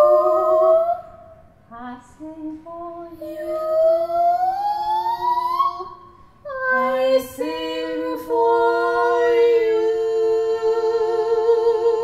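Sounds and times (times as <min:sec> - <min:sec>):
women singing sustained notes: 0:00.0 - 0:12.0.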